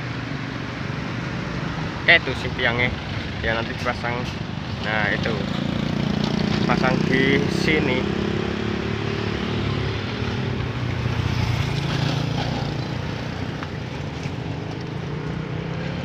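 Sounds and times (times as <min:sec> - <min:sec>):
motorcycles passing: 0:00.0 - 0:16.0.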